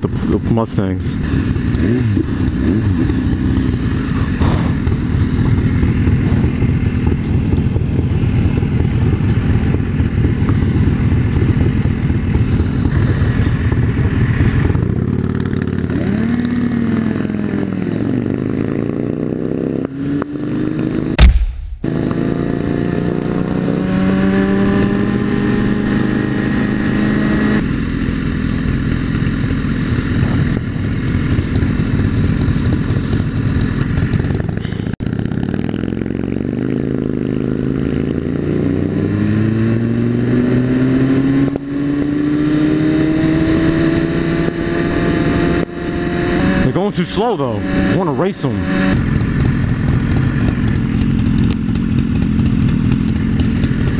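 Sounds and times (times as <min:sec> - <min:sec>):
motorcycle engine revving: 0:00.0 - 0:53.9
loud thump: 0:21.2 - 0:22.2
rush of noise: 0:21.2 - 0:22.4.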